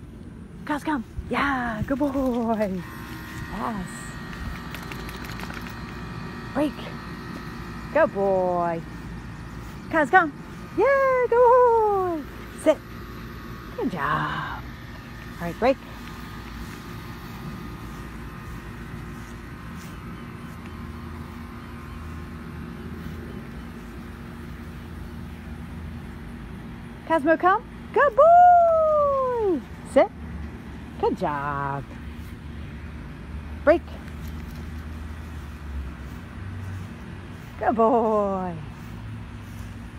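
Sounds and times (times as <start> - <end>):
faint constant hum: 0.0 - 39.9
outdoor background rumble: 0.0 - 39.9
woman speaking a command: 0.6 - 2.9, 3.5 - 4.2, 6.5 - 7.0, 7.9 - 8.9, 9.8 - 12.9, 13.7 - 14.6, 15.4 - 16.0, 27.0 - 30.2, 31.0 - 32.0, 33.6 - 34.0, 37.5 - 38.8.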